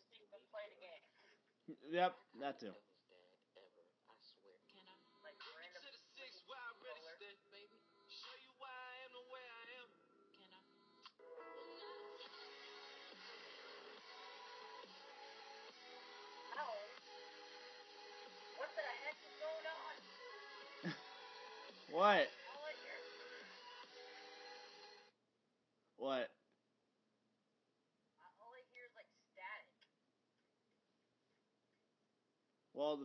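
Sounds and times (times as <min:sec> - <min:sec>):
music: 0:04.9 - 0:09.4, 0:10.6 - 0:25.1
voices: 0:16.5 - 0:17.0, 0:18.5 - 0:20.1, 0:21.9 - 0:23.0.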